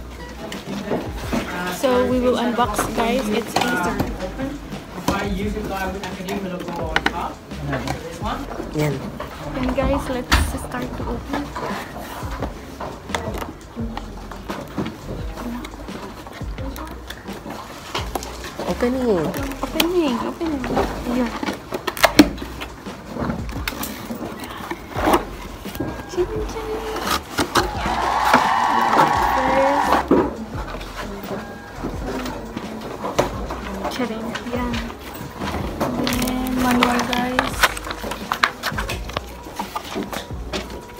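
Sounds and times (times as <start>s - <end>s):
voices: 0.0s - 21.8s, 22.4s - 40.9s
background music: 0.0s - 40.9s
paper rustling and scraping: 30.7s - 40.9s.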